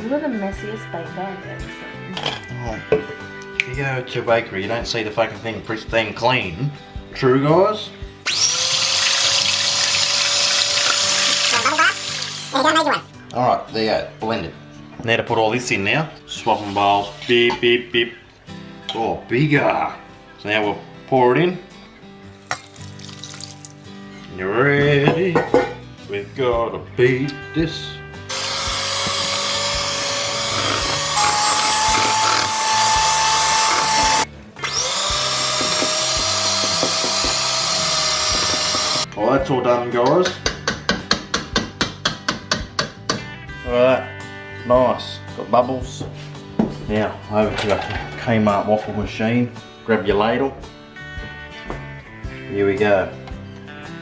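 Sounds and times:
electric hand mixer whisking: 8.3 - 13.0, 28.3 - 39.1.

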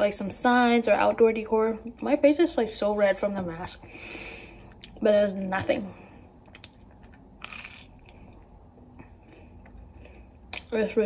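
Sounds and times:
person chewing toast: 6.4 - 10.8.

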